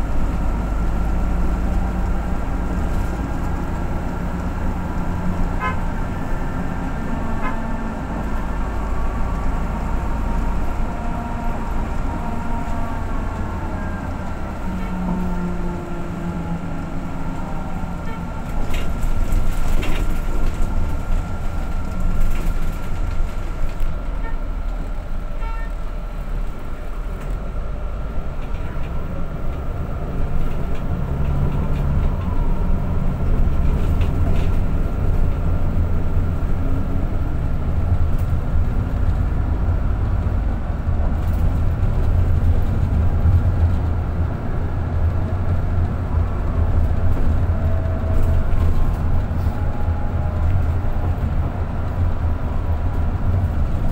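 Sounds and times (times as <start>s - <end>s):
bus engine and tyres rumbling: 0.0s - 53.9s.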